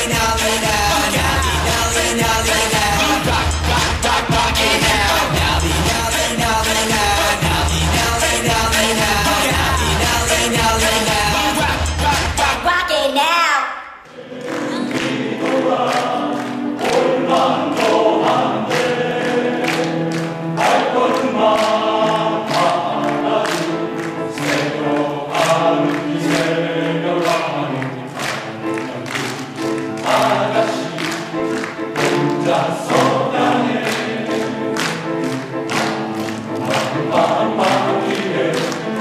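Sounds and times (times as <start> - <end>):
men's choir singing in harmony: 0.0 - 12.6, 14.1 - 39.0.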